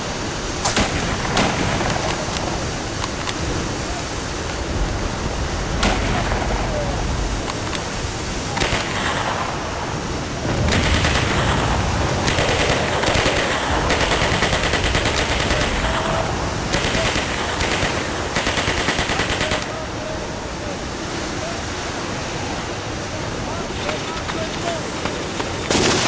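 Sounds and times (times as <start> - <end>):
steady rushing background: 0.0 - 26.0
machine-gun fire: 8.5 - 9.4, 10.5 - 19.7.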